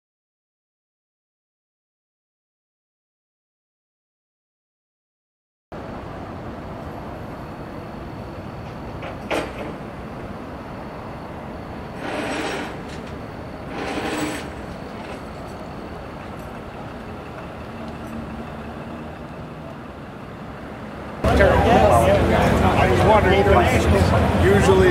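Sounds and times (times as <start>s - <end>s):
trucks rumbling: 5.8s - 24.9s.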